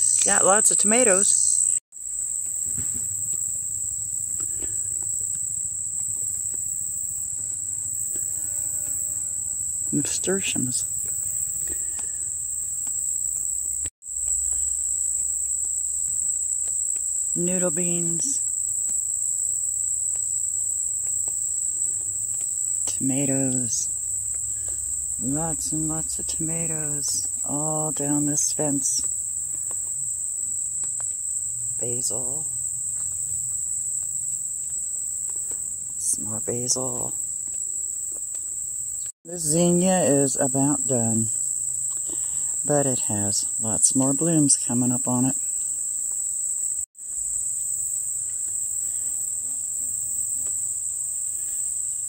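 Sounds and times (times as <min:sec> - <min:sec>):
crickets chirring: 0:00.0 - 0:52.0
insects trilling: 0:00.0 - 0:52.0.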